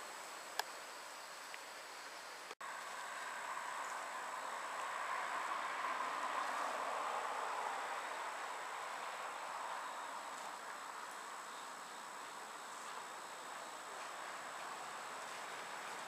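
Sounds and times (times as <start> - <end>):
steady outdoor hiss: 0.0 - 16.0.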